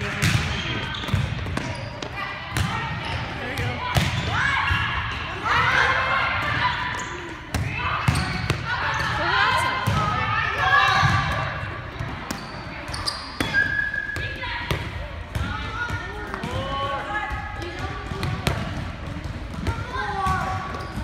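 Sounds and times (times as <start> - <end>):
volleyballs hit and bouncing: 0.0 - 21.0.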